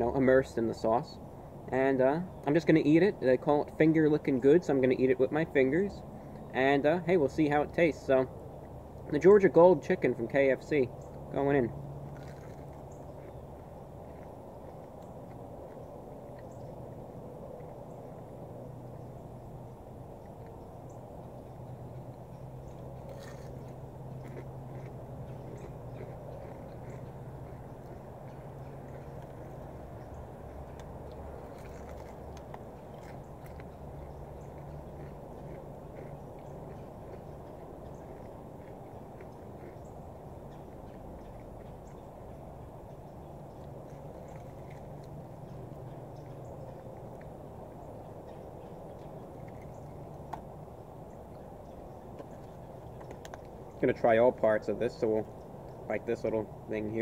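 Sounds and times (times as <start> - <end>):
low outdoor hum: 0.0 - 57.0
crunching fried chicken: 10.6 - 53.8.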